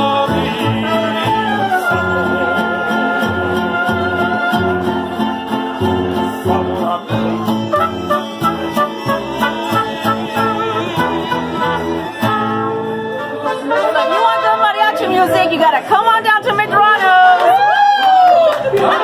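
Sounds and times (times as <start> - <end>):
mariachi band playing: 0.0 - 19.0.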